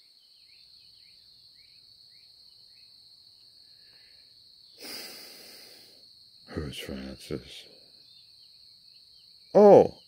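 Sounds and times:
small bird chirping: 0:00.0 - 0:05.8, 0:06.5 - 0:10.0
crickets droning: 0:00.0 - 0:10.0.

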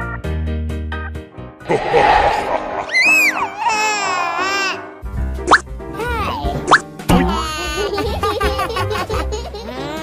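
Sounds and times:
high wavering voice-like squeal: 0:01.7 - 0:05.0.

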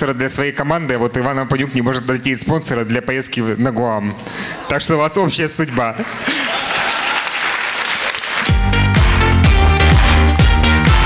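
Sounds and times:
applause in a hall: 0:05.8 - 0:09.2
loud music with heavy bass: 0:08.5 - 0:11.0.

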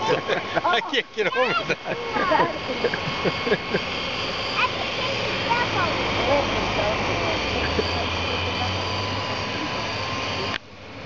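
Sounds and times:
person laughing: 0:00.0 - 0:04.1
low hum: 0:00.0 - 0:11.0
steady whirring: 0:00.0 - 0:11.0.

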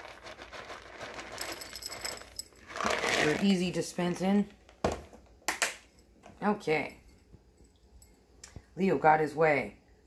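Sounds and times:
treats rattling in plastic tub: 0:00.0 - 0:03.9.

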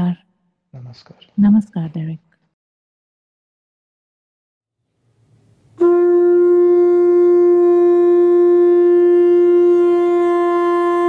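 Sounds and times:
long steady horn note: 0:05.6 - 0:11.0.

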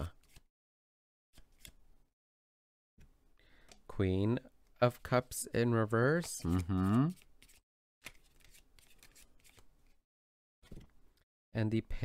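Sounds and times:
cards rustling: 0:06.1 - 0:10.0.

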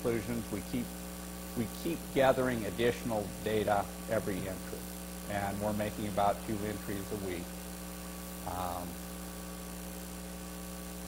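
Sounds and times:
electrical mains hum: 0:00.0 - 0:11.0
faint background hiss: 0:00.0 - 0:11.0.

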